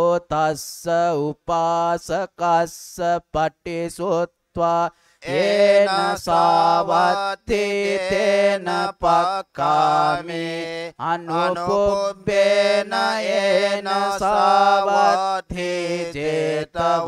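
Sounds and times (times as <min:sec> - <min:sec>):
monks chanting: 0:05.3 - 0:17.0.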